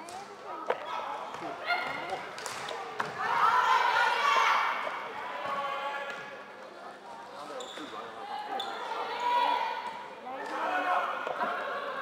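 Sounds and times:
shoes squeaking on court floor: 0:07.4 - 0:08.9.

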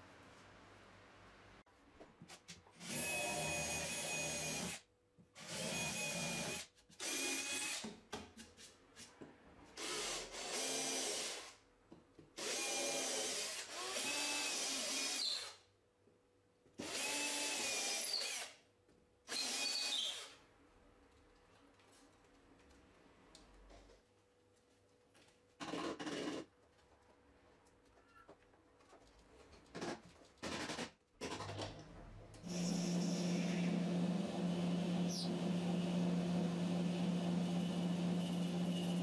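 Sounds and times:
cordless drill boring into wood: 0:12.4 - 0:15.5, 0:16.8 - 0:18.5, 0:19.3 - 0:20.3.

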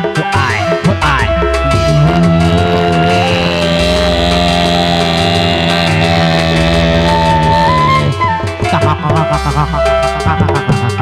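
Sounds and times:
band music over loudspeakers: 0:00.0 - 0:11.0
held electronic keyboard notes: 0:00.0 - 0:11.0.

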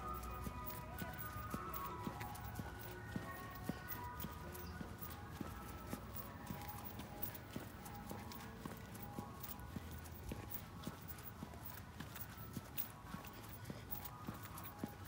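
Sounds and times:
footsteps on tarmac: 0:00.0 - 0:15.0.

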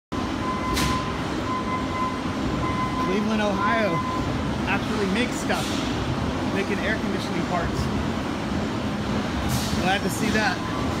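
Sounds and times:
machinery low rumble: 0:00.1 - 0:11.0.

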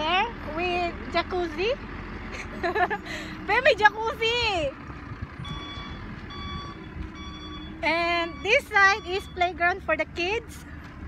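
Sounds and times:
vehicle reversing alarm beeping: 0:05.3 - 0:10.4.

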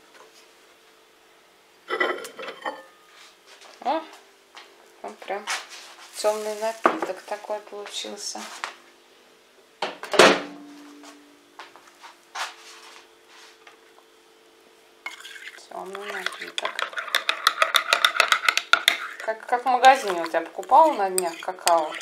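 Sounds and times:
spoon clinking in a ceramic mug: 0:15.1 - 0:19.3.

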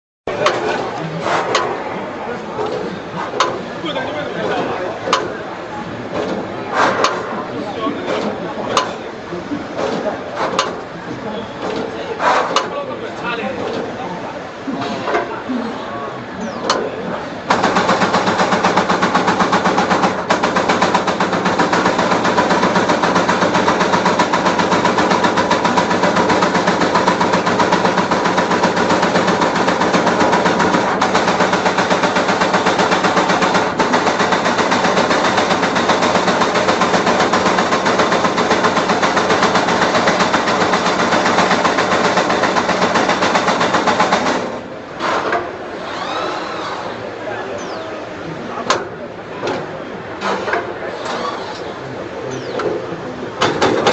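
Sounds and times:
steady machine hum: 0:00.3 - 0:53.9
punch press punching sheet metal: 0:06.1 - 0:07.4, 0:17.5 - 0:45.6.

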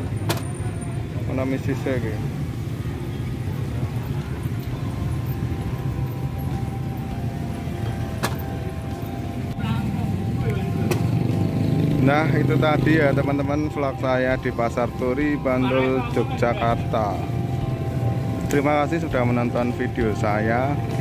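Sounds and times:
street traffic rumble: 0:00.0 - 0:21.0.

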